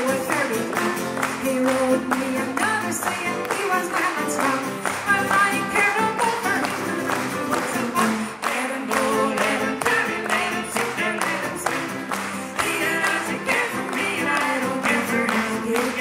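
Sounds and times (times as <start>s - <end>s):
hand-claps: 0.0s - 16.0s
strummed acoustic guitar: 0.0s - 16.0s.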